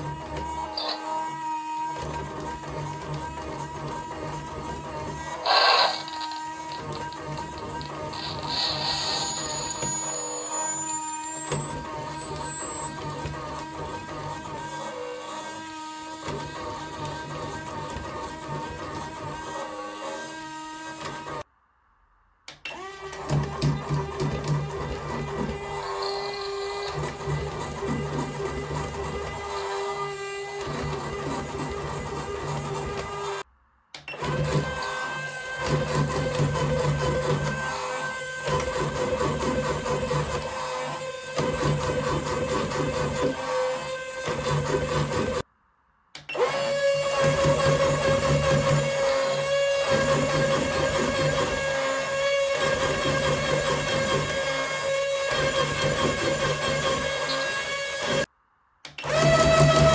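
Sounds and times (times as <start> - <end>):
toy gear motor whine: 0.0 - 21.5, 22.7 - 33.5, 46.2 - 58.3, 59.0 - 59.9.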